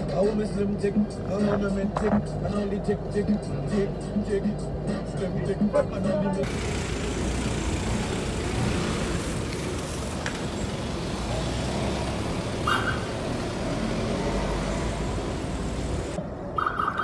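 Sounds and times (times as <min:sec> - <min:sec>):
street traffic roar: 0:00.0 - 0:17.0.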